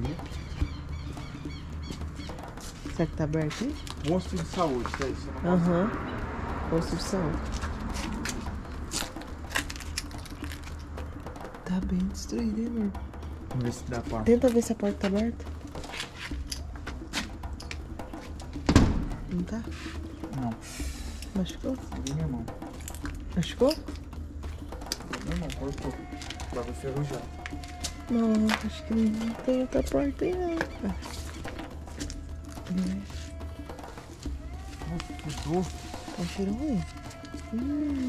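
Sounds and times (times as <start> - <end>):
bird chirping: 0.0 - 4.8, 28.8 - 33.0
low steady rumble: 0.0 - 15.8
loud door clunk: 18.7 - 19.2.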